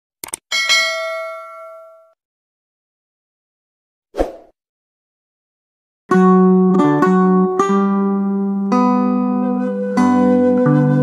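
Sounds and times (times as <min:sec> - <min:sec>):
notification bell ding: 0:00.5 - 0:02.2.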